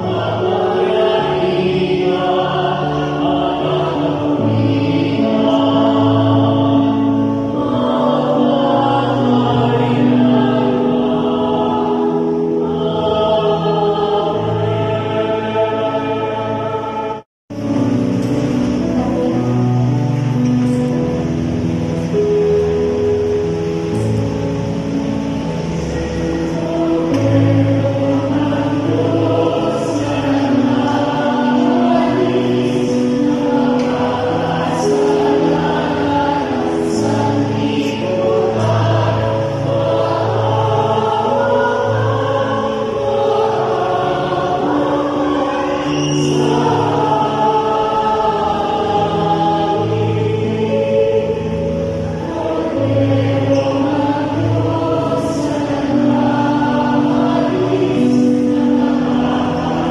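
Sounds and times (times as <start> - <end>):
choir singing in harmony: 0.0 - 59.9.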